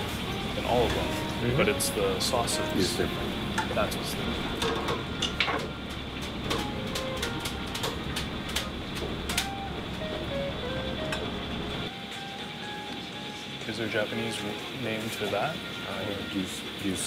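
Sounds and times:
background music: 0.0 - 8.6, 9.2 - 17.0.

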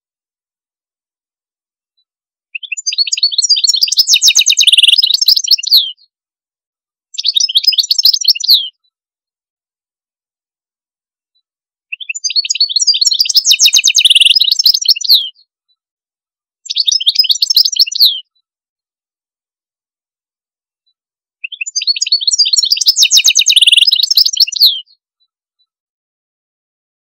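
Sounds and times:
songbird trilling: 2.6 - 5.8, 12.0 - 15.3, 16.7 - 18.2, 21.5 - 24.8.

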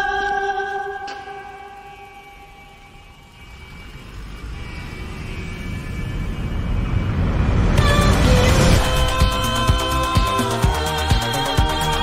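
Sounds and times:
sustained high tones: 0.0 - 12.0
deep rumbling swell: 2.0 - 12.0.

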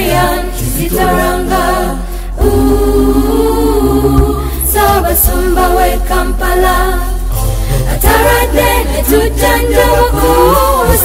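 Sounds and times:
school choir singing: 0.0 - 7.2, 7.9 - 11.0.

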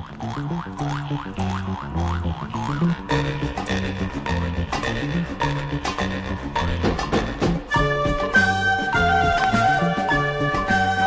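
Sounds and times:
twanging rising boing: 0.0 - 7.8
bass line and band backing: 2.2 - 11.0.

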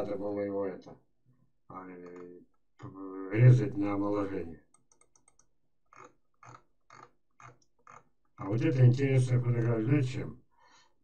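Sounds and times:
faint computer clicks: 4.7 - 8.0.

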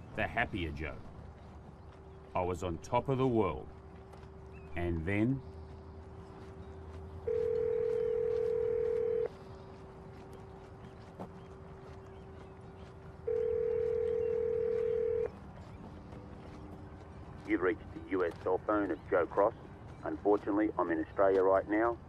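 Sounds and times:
telephone ringback tone: 7.3 - 9.3, 13.3 - 15.3.

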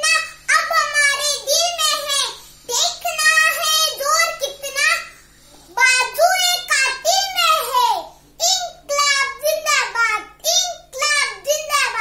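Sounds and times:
girl speaking: 0.0 - 12.0.

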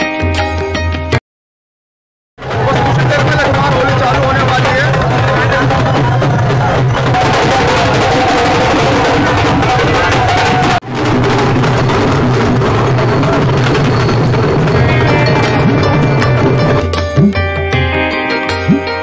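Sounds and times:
dense crowd din: 2.4 - 17.0
loud drumming: 2.4 - 18.0
melodic music with held notes: 14.8 - 19.0.

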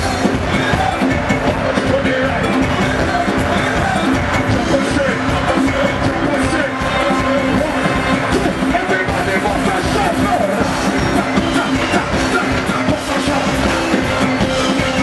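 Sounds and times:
live band playing soca music: 0.0 - 15.0.

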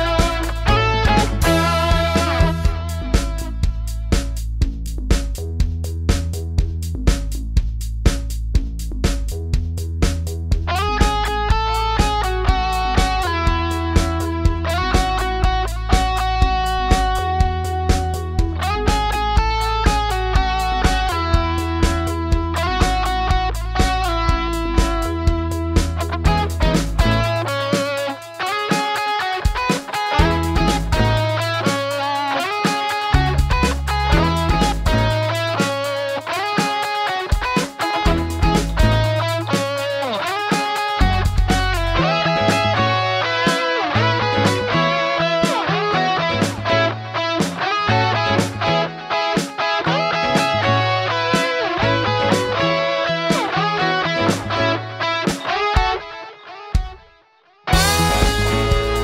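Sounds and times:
electric guitars playing melody: 0.0 - 4.4, 10.6 - 59.0
pulsing low bass line: 0.0 - 27.4, 30.2 - 31.4, 33.2 - 35.4, 38.1 - 39.3, 41.0 - 43.0, 57.7 - 59.0
steady beat: 0.0 - 54.6, 57.7 - 59.0.

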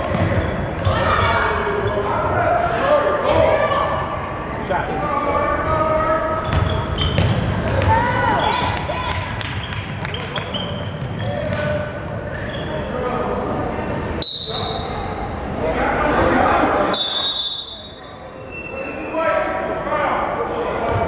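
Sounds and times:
shoe squeaks: 0.2 - 2.1, 3.9 - 4.4, 6.2 - 7.4, 9.6 - 13.0, 14.2 - 15.5, 16.9 - 19.4.

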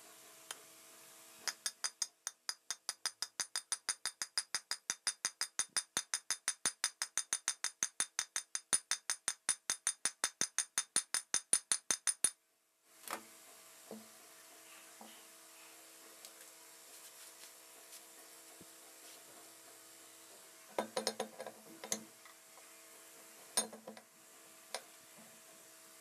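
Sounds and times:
hammer tapping on metal: 1.5 - 12.4.

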